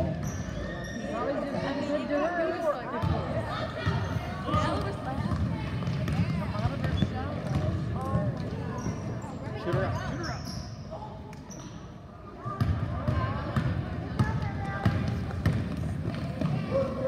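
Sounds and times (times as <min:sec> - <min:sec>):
spectators chattering and calling: 0:00.0 - 0:17.0.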